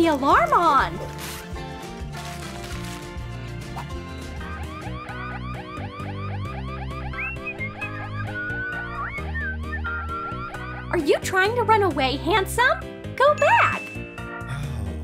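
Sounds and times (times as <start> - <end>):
background music: 0.0 - 15.0
warbling alarm siren: 4.4 - 11.2
whistled tune: 4.4 - 11.7, 13.4 - 14.6.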